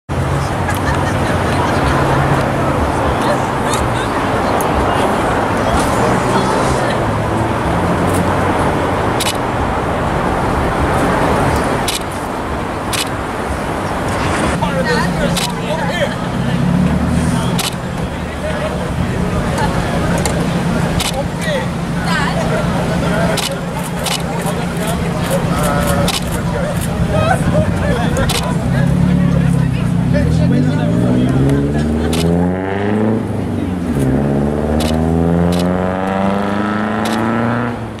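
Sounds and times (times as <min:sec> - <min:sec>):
vehicle engine idling: 0:00.1 - 0:32.4
indistinct voices: 0:00.1 - 0:38.0
sharp clicks: 0:09.2 - 0:09.5, 0:11.9 - 0:12.2, 0:12.9 - 0:13.2, 0:15.3 - 0:15.6, 0:17.6 - 0:17.9, 0:21.0 - 0:21.2, 0:23.4 - 0:24.3, 0:25.9 - 0:26.9, 0:28.2 - 0:28.5, 0:32.1 - 0:32.4, 0:34.8 - 0:35.8, 0:37.0 - 0:37.3.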